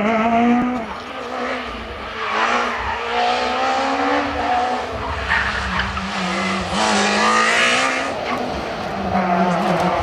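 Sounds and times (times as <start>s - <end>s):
rally car engine at high revs: 0.0s - 10.0s.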